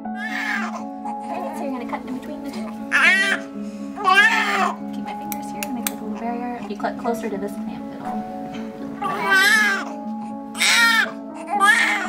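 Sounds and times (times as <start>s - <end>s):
baby crying: 0.0s - 1.8s, 2.5s - 4.8s, 9.0s - 12.0s
background music: 0.0s - 12.0s.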